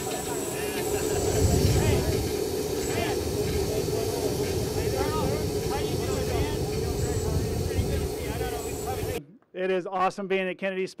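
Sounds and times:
jet engine running: 0.0s - 9.2s
indistinct voices: 0.0s - 9.3s.

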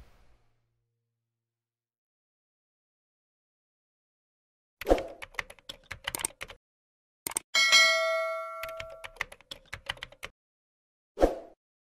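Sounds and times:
quick clicks: 4.8s - 6.6s, 7.3s - 7.5s
bright bell ding: 7.6s - 9.1s.

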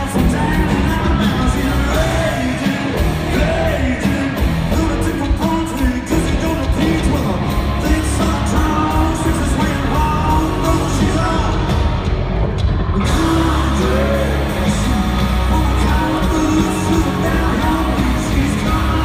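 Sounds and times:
man singing: 0.0s - 11.9s, 13.0s - 19.0s
live country rock band: 0.0s - 19.0s.

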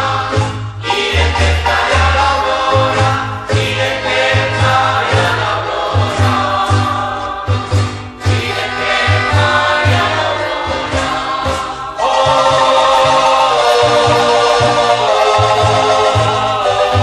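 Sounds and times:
church choir singing a hymn: 0.0s - 17.0s.

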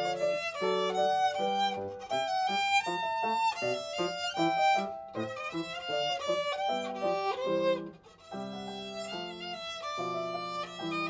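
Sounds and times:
piano notes: 0.0s - 11.0s
violin melody: 0.0s - 11.0s.

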